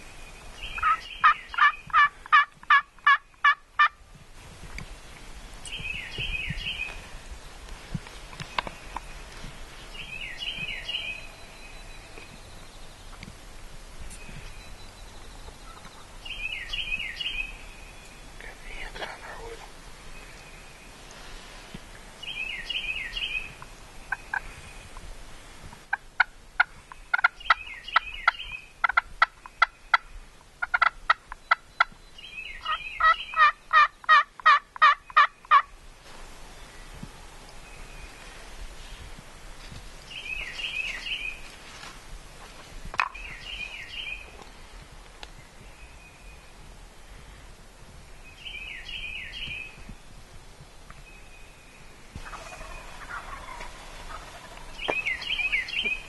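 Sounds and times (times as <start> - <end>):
turkey gobbling: 0.8 - 4.0, 25.9 - 30.0, 30.6 - 31.6, 32.6 - 35.7, 52.2 - 56.0
turkey yelps: 32.6 - 35.6, 52.2 - 56.0.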